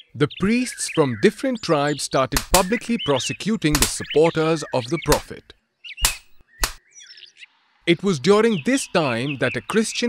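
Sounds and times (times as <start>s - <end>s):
sharp lash of a stick: 2.4s - 2.7s, 3.7s - 4.1s, 6.0s - 6.8s.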